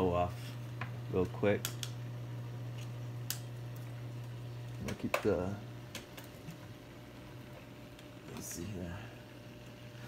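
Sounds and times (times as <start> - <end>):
aquarium pumps humming: 0.0 - 10.0.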